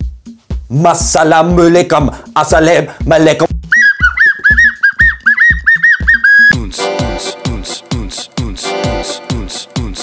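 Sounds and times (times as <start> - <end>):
thumping dance beat: 0.0 - 7.6
electronic dance track: 0.2 - 10.0
high toy flute tune: 3.7 - 7.4.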